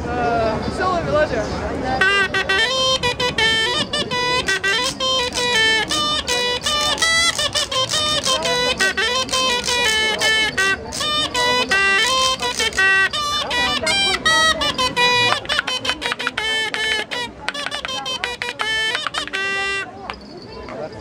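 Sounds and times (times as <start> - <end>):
reed hornpipe playing lively melody: 2.0 - 20.2.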